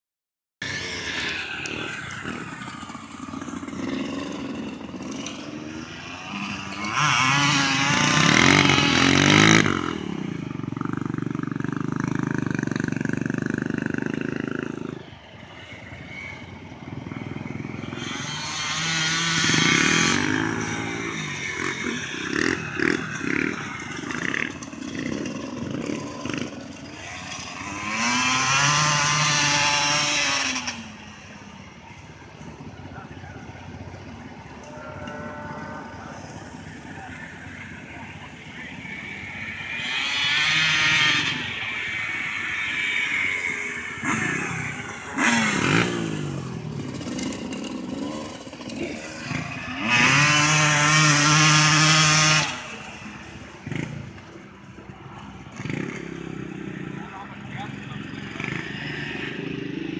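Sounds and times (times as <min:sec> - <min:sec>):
engines revving: 0:00.6 - 0:59.9.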